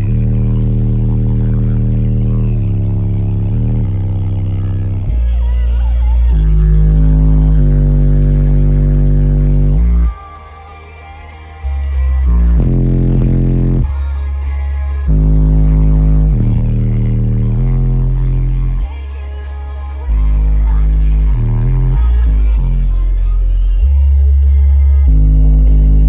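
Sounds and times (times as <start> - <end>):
bass-heavy electronic music: 0.0 - 26.0.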